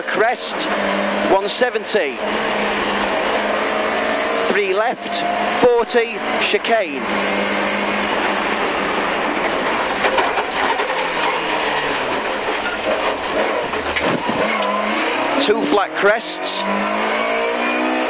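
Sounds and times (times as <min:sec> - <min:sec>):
car engine at speed: 0:00.0 - 0:18.0
road noise: 0:00.0 - 0:18.0.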